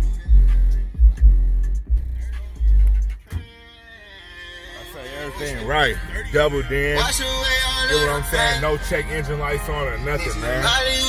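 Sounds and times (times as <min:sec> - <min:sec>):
car stereo music with deep bass: 0:00.0 - 0:11.0.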